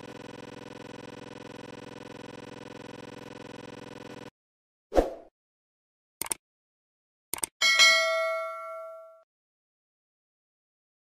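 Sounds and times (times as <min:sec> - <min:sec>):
bright bell ding: 0:07.6 - 0:09.2.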